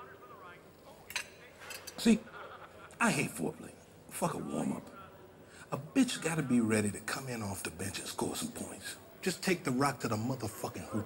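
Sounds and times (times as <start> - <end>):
cutlery clinking on dishes: 1.1 - 2.0.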